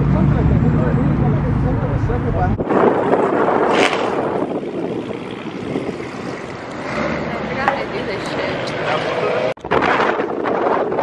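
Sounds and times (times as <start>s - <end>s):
car engines and exhaust pulling away: 0.0s - 9.6s.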